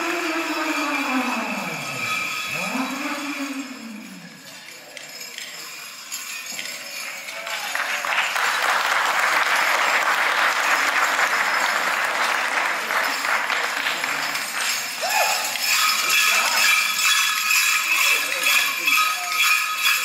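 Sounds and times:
audience applauding: 6.6 - 17.0.

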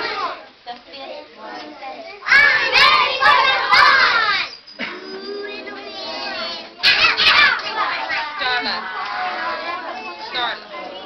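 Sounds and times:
young children shouting together: 0.0 - 0.4, 2.1 - 11.0.

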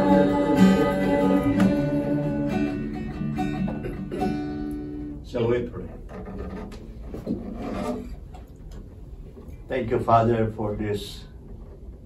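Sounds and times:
acoustic guitar body rubbing and bumping: 2.7 - 4.7, 5.8 - 8.4.

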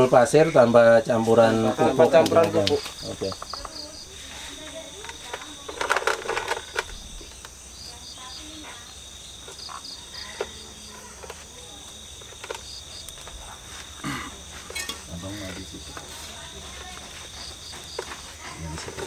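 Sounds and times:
steady high insect trill: 0.0 - 18.9
crickets chirping: 0.0 - 19.0.

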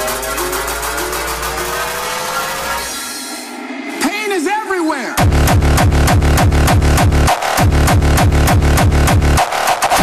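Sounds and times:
rising synth tone: 0.0 - 4.2
electronic dance music build-up: 0.0 - 10.0
deep bass: 5.2 - 10.0.

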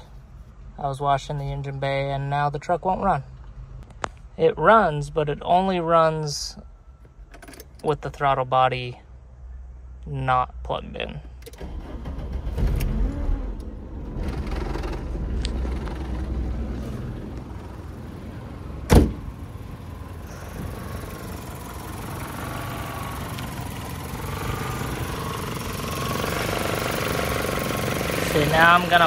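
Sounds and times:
four-cylinder engine running: 11.4 - 29.0
loud thump: 18.8 - 19.4.

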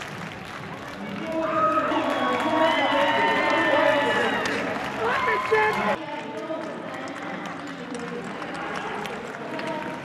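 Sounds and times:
loud excited voices: 1.2 - 6.0.

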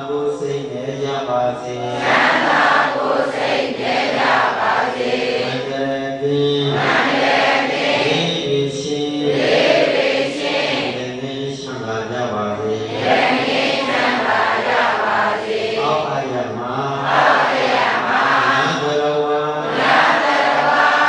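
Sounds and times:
monk chanting: 0.0 - 14.8, 15.6 - 21.0.

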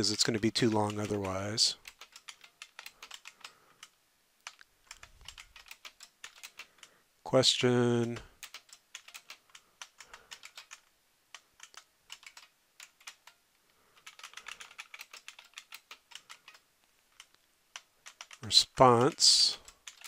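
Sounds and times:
keyboard typing: 0.0 - 6.9, 8.0 - 20.0.

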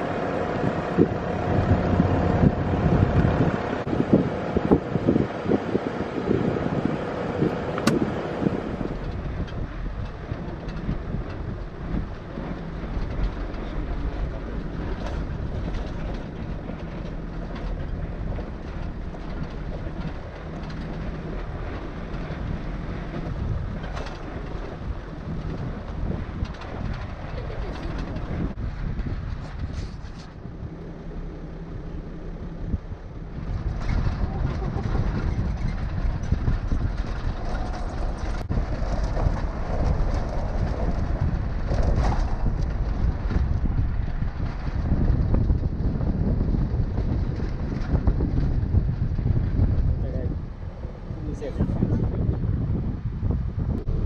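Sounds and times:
road rumble: 0.0 - 54.0
vehicle engine hum: 0.0 - 54.0
wind buffeting microphone: 0.0 - 54.0.

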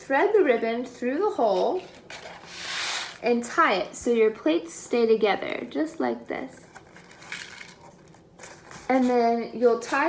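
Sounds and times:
woman speaking: 0.0 - 1.9, 3.2 - 6.7, 8.9 - 10.0.

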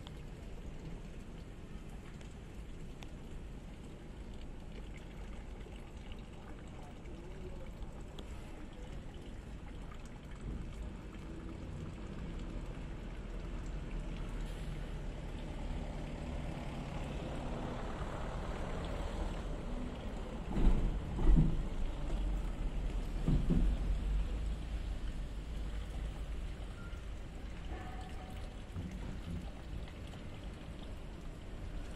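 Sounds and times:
water flowing in concrete drain: 0.0 - 31.9.

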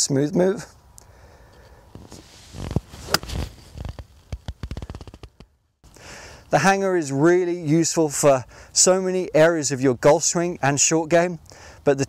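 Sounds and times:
golf club striking ball: 3.0 - 3.4.

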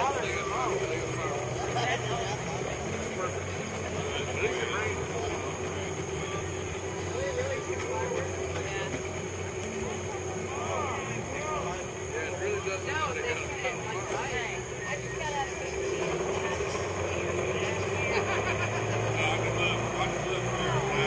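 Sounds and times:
outboard motor humming: 0.0 - 21.0
people chattering: 0.0 - 21.0.

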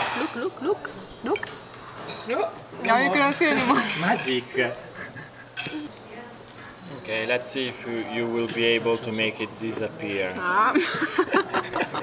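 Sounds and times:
crickets chirping: 0.0 - 12.0
person laughing: 4.9 - 5.9.

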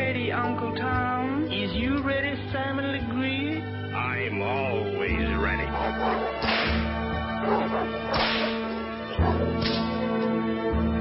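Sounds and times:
whip cracks: 6.4 - 7.0, 8.1 - 8.8, 9.6 - 10.2.

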